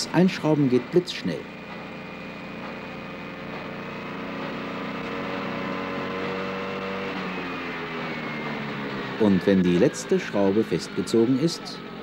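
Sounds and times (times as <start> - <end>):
machine motor running: 0.0 - 12.0.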